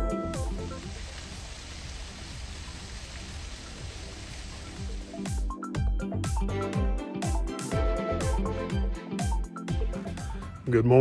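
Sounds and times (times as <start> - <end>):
waterfall onto rocks: 0.0 - 5.5.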